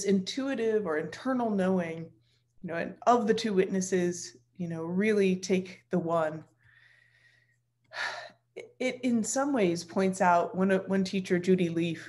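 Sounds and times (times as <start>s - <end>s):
woman speaking: 0.0s - 6.5s, 8.0s - 12.0s
woman breathing in: 6.6s - 8.2s.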